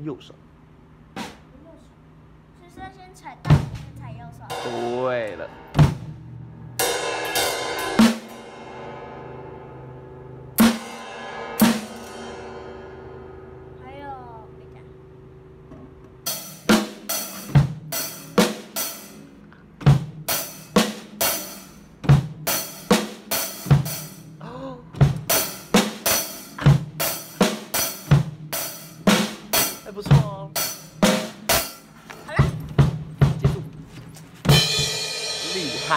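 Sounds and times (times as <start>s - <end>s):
drum kit beat: 1.0s - 1.6s, 3.4s - 9.8s, 10.5s - 13.3s, 16.2s - 35.9s
cymbal crashes ringing: 6.8s - 13.8s, 34.5s - 35.9s.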